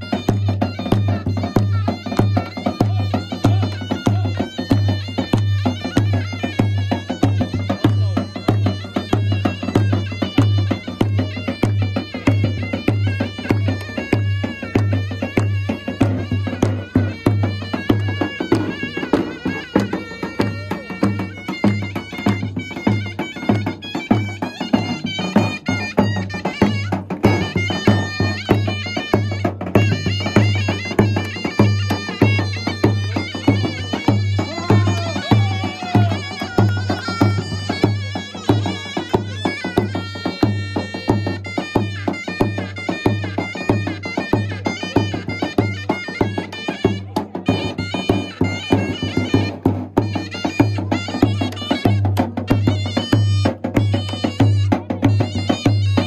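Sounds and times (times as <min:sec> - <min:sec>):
shrill reed pipe melody: 0:00.0 - 0:56.0.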